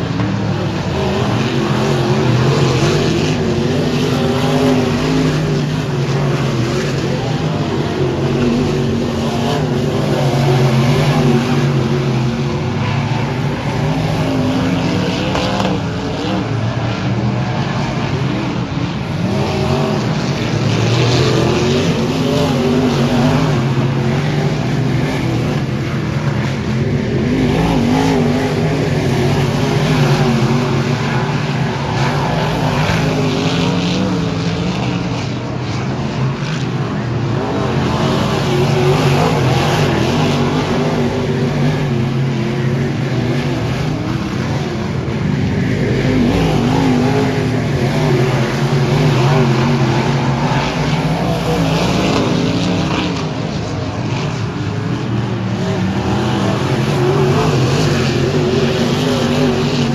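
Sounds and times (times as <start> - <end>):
race car engines passing: 0.0 - 59.9.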